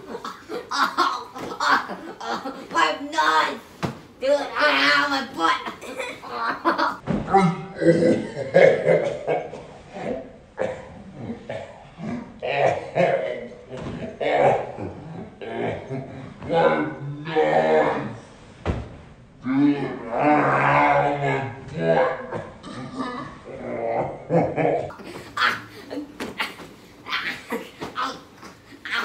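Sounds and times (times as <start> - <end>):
slowed deep-pitched voices: 19.4 - 24.9.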